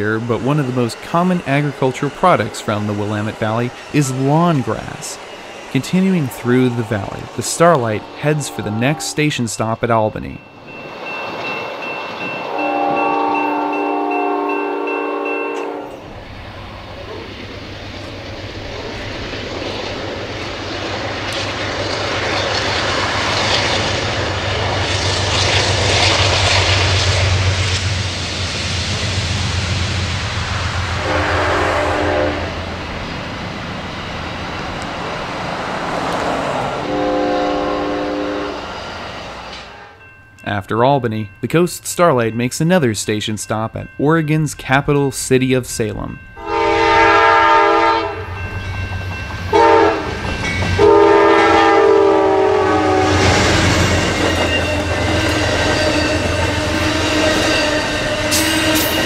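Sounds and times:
train wheels on rails: 0.0s - 40.4s, 44.1s - 59.0s
locomotive engine hum: 0.0s - 40.6s, 45.9s - 59.0s
train horn blast: 7.6s - 9.4s, 12.4s - 16.0s, 30.9s - 32.6s, 36.8s - 38.7s, 39.6s - 40.0s, 46.4s - 48.4s, 49.5s - 50.2s, 50.8s - 59.0s.

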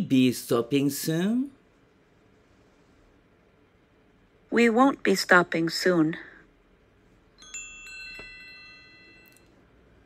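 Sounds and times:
bell-like chime tones: 7.4s - 9.6s.

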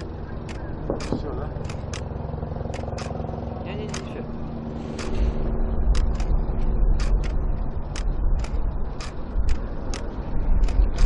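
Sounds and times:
distant fireworks cracks: 0.0s - 2.0s
deep rumble: 0.0s - 11.0s
steady low hum: 0.0s - 11.0s.

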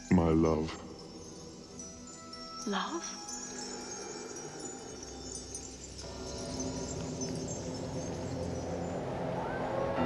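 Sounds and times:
twinkling chime-like tones: 0.0s - 10.0s.

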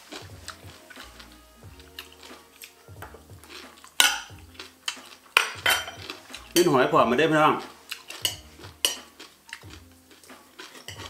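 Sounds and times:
cutlery clinking on plates: 3.1s - 6.7s, 7.6s - 11.0s.

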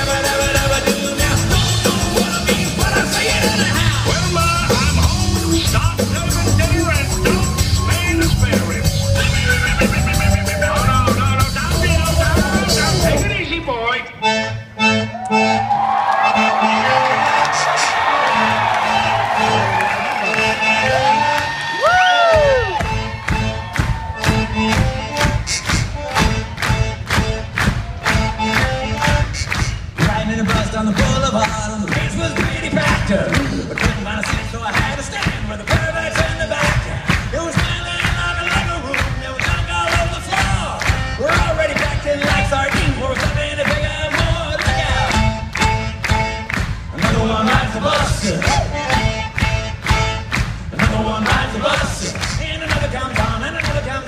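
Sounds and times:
steady drum beat: 0.0s - 13.4s, 21.8s - 54.0s
live rock band with accordion: 0.0s - 54.0s
person whooping: 15.1s - 24.6s
crowd cheering: 15.1s - 28.6s.

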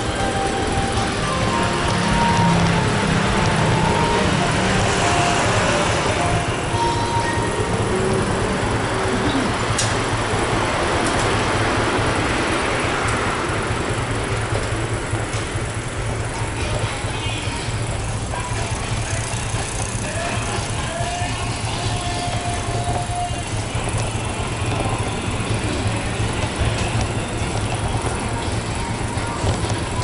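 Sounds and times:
low rumble of street noise: 0.0s - 30.0s.

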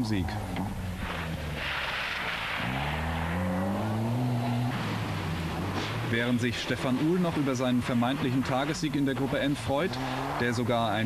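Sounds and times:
car engine accelerating: 0.0s - 11.0s.

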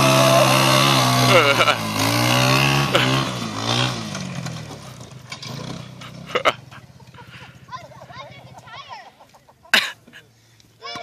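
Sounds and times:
atv engine winding down: 0.0s - 8.7s.

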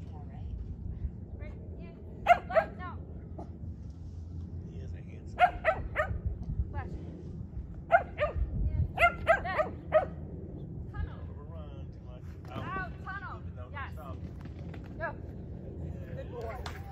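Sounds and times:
small dog barking: 2.2s - 2.8s, 5.4s - 6.2s, 7.9s - 10.2s.

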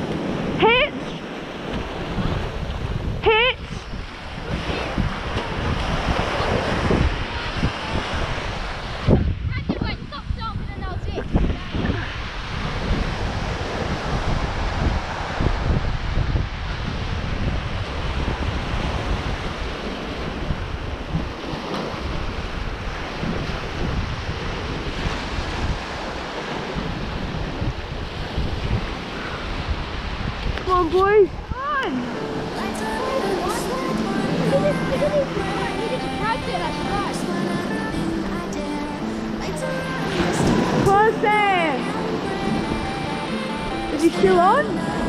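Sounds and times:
small waves breaking on beach: 0.0s - 45.0s
wind buffeting microphone: 0.0s - 45.0s.

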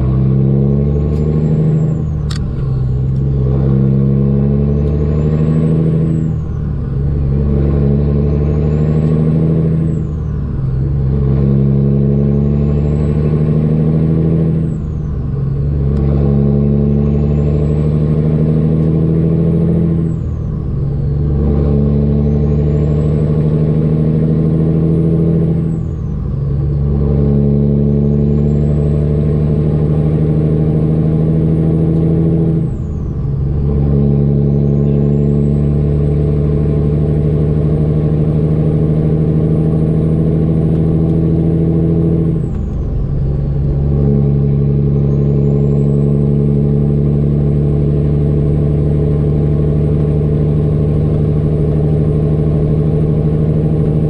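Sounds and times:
diesel truck engine pulling: 0.0s - 54.0s.

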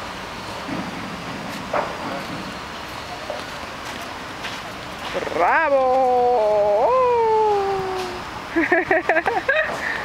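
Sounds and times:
distant road traffic: 0.0s - 10.0s.

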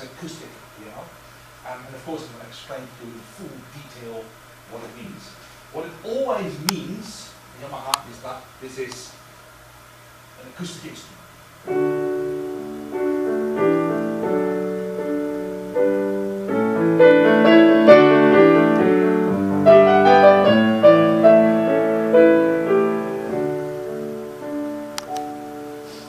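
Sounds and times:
piano chords: 11.6s - 26.0s.

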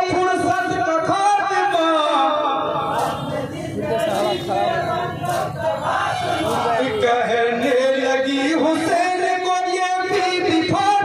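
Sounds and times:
men chanting together: 2.6s - 9.0s.

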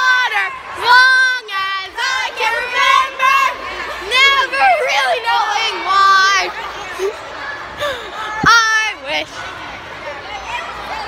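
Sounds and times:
girls singing unaccompanied: 0.0s - 6.9s.

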